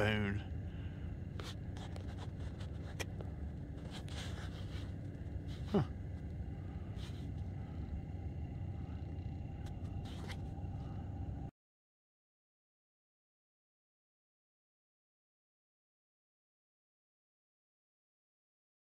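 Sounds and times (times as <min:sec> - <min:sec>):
low outdoor rumble: 0:00.0 - 0:11.5.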